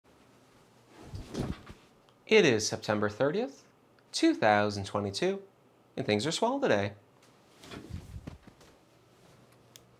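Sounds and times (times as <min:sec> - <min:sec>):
office chair knocks and rustling: 0:01.1 - 0:01.8, 0:07.6 - 0:08.7.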